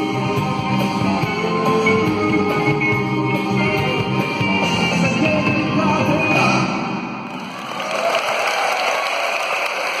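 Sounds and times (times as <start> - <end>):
live band playing: 0.0 - 7.8
audience applause: 7.3 - 10.0.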